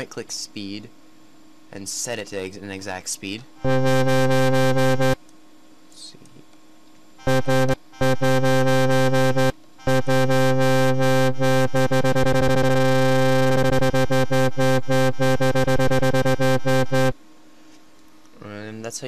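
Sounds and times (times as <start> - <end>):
pulsing synthesized wobble bass: 3.6 - 5.2, 7.2 - 17.1.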